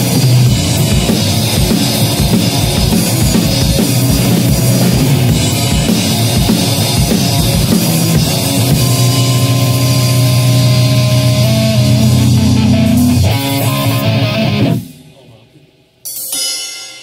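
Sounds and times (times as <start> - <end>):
distorted electric guitar chords: 0.0 - 15.3
drum kit with cymbal wash: 0.0 - 17.0.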